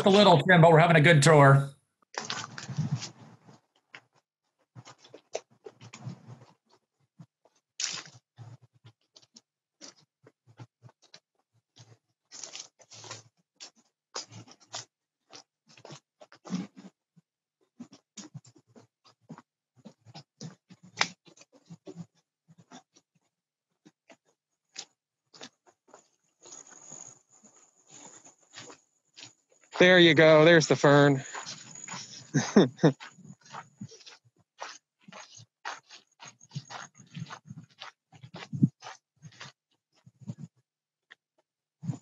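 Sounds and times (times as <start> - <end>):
footsteps crunching on sand: 28.0 - 39.6
faint scratching and rustling: 33.1 - 40.5.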